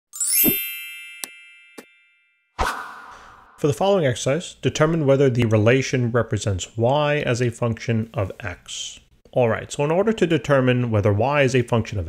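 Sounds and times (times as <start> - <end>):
bright ringing chime: 0.1 - 2.6.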